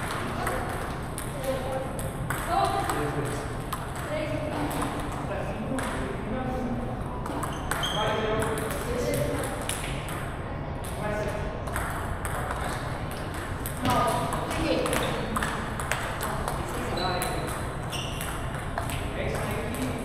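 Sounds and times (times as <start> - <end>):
table tennis balls clicking: 0.0 - 6.1, 7.2 - 20.0
people talking: 0.2 - 3.4, 8.0 - 9.7, 13.8 - 15.6, 19.1 - 20.0.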